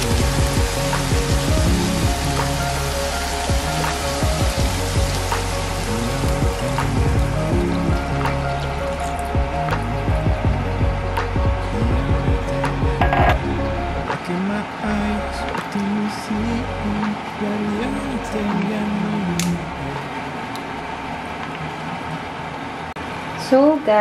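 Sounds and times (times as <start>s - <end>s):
meat sizzling in a frying pan: 0.0s - 9.4s
background music: 0.0s - 20.3s.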